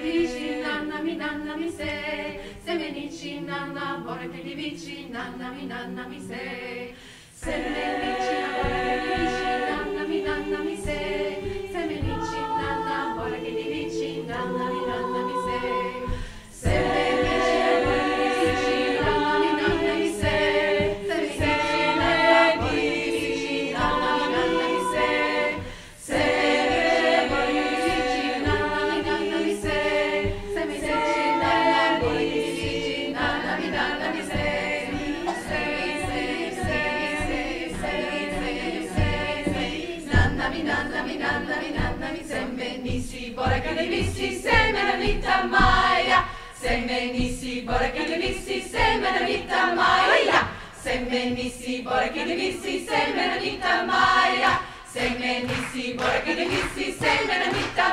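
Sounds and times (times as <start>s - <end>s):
women's choir singing a cappella: 0.0s - 57.9s.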